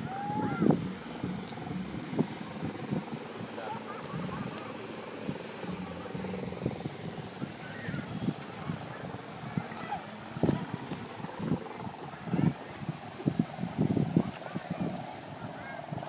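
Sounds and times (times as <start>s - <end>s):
distant voices: 0.0s - 16.0s
wind buffeting microphone: 0.0s - 16.0s.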